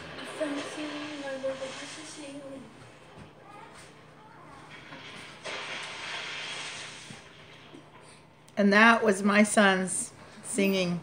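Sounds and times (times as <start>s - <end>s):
rustling hiss: 0.0s - 2.8s, 4.7s - 8.0s.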